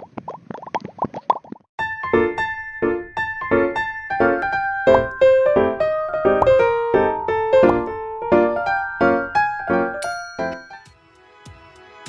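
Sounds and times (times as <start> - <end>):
keyboard music with chords: 1.8 - 11.0
cartoon bubble plops: 6.4 - 6.7.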